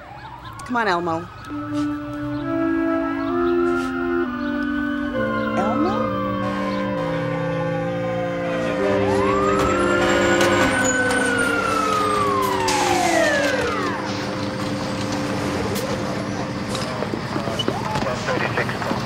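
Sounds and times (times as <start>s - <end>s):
fire engine siren wailing: 0.0s - 19.0s
held background notes: 0.6s - 18.4s.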